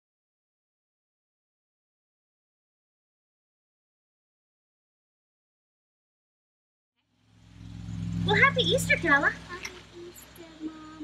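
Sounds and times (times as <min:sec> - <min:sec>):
low mechanical hum with hiss: 0:07.4 - 0:11.0.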